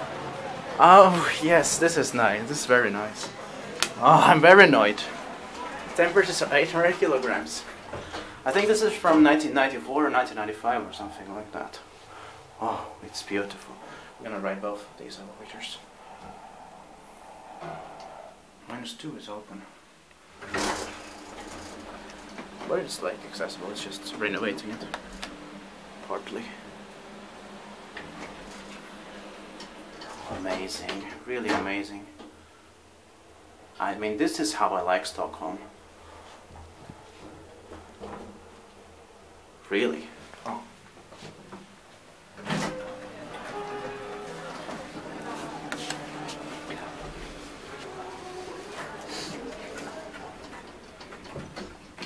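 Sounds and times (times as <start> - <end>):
elevator sliding doors: 0.0 - 18.8, 19.6 - 52.0
elevator hum: 0.0 - 52.0.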